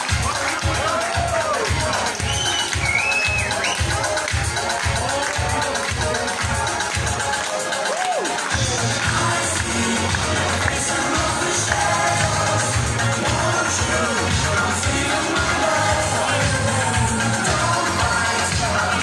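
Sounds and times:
crowd cheering: 0:00.0 - 0:19.0
disco dance music: 0:00.0 - 0:19.0
man singing into microphone: 0:08.6 - 0:19.0.

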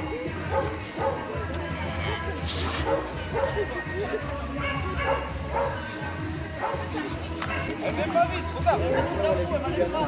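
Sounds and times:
background music: 0:00.0 - 0:10.0
dog barking: 0:00.5 - 0:01.3, 0:02.8 - 0:03.6, 0:04.6 - 0:05.8, 0:06.6 - 0:07.8.

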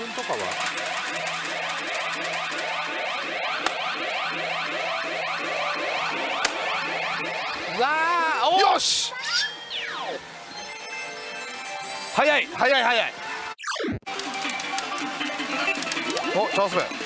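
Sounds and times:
rising electronic chirps: 0:01.2 - 0:11.6.

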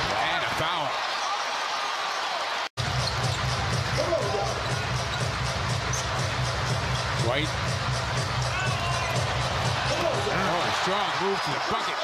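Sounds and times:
arena crowd: 0:00.0 - 0:12.0.

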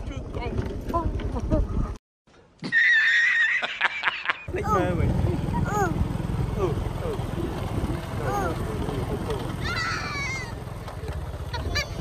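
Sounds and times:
rising-and-falling calls: 0:02.6 - 0:03.9
motor scooter engine rumble: 0:04.5 - 0:12.0.

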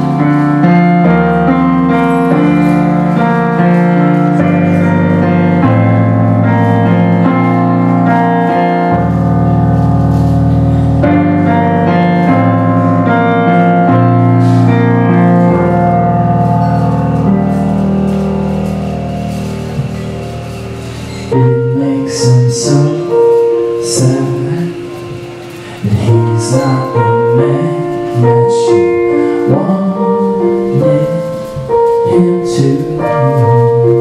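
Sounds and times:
digital piano playing slow chords: 0:00.0 - 0:34.0.

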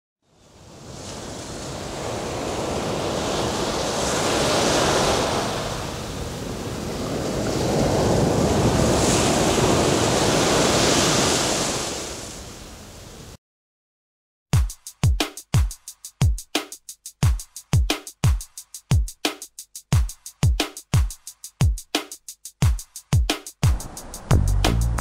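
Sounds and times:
sea waves washing: 0:00.6 - 0:12.6, 0:23.6 - 0:25.0.

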